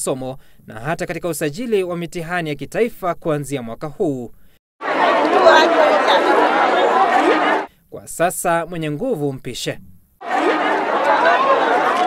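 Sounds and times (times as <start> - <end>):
crowd babble: 4.8 - 7.7, 10.2 - 12.0.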